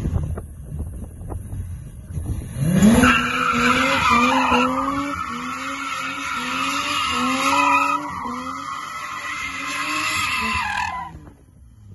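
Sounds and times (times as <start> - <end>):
car engine revving high: 2.5 - 11.2.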